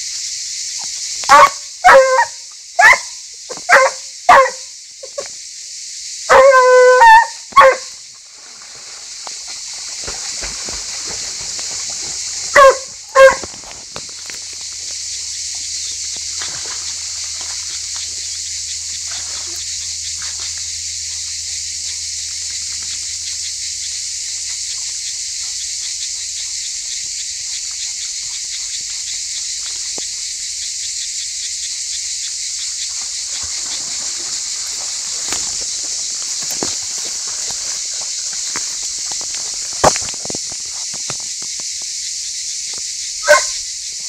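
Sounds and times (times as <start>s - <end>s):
steady high hiss: 0.0s - 6.3s, 7.4s - 44.0s
animal rustling through grass: 8.3s - 20.8s, 33.0s - 41.1s.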